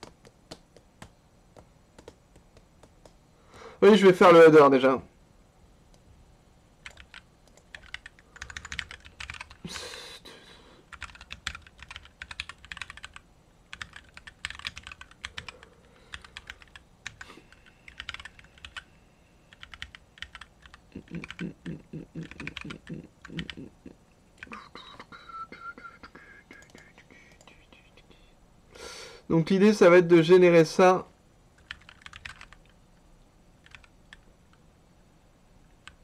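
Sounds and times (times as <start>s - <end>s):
typing on computer keyboard: 6.8s - 9.6s, 10.9s - 18.8s, 19.5s - 23.6s, 31.6s - 32.8s, 33.6s - 34.3s.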